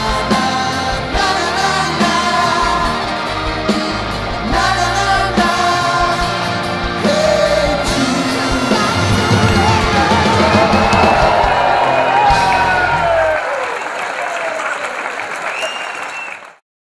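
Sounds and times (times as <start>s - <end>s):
several people singing: 0.0s - 11.4s
live pop band with horns: 0.0s - 13.4s.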